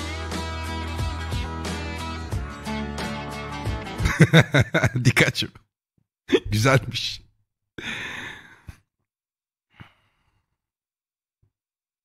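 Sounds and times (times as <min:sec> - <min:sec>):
man sighing: 0:07.8 - 0:08.8.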